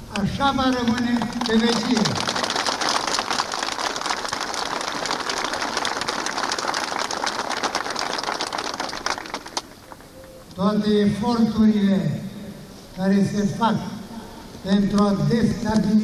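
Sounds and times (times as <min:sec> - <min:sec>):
crowd applauding: 0:00.6 - 0:10.4.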